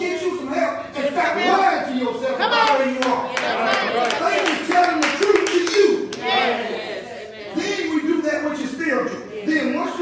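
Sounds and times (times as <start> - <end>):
man speaking loudly: 0.0 - 6.1, 7.5 - 10.0
sharp hand claps: 2.6 - 6.2.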